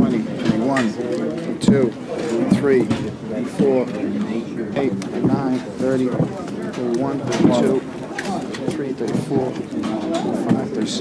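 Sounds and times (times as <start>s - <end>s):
voices talking and counting: 0.0s - 11.0s.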